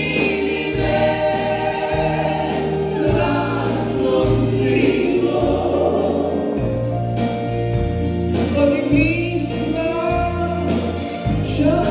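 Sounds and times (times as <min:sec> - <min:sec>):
backing vocalists in harmony: 0:00.0 - 0:07.3
band with keyboards: 0:00.0 - 0:11.9.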